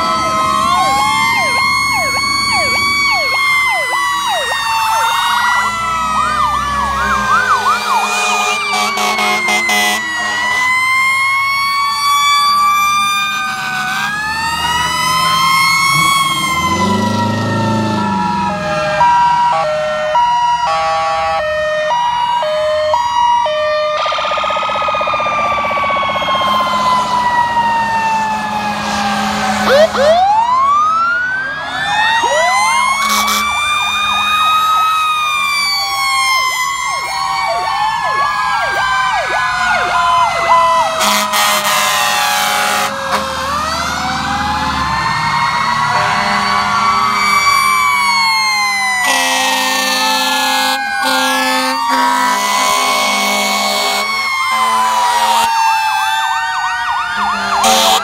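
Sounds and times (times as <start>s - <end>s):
two-note hi-lo siren: 0.0s - 58.0s
wailing sirens: 0.0s - 58.0s
yelping siren: 0.0s - 58.0s.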